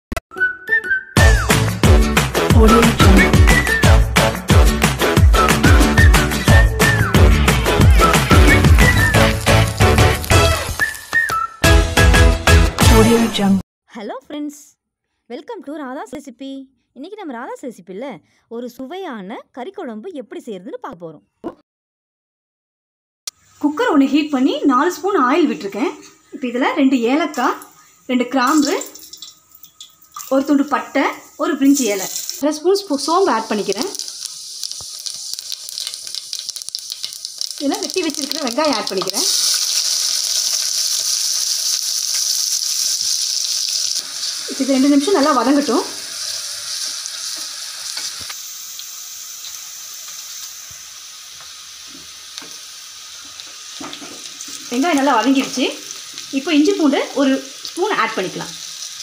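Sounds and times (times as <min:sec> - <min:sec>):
woman speaking: 0:02.5 - 0:03.4, 0:12.9 - 0:21.6, 0:23.6 - 0:29.0, 0:30.3 - 0:34.0, 0:37.6 - 0:39.3, 0:44.5 - 0:45.9, 0:54.7 - 0:55.8, 0:56.4 - 0:58.6
onions sizzling in oil: 0:05.0 - 0:11.3, 0:23.3 - 0:59.0.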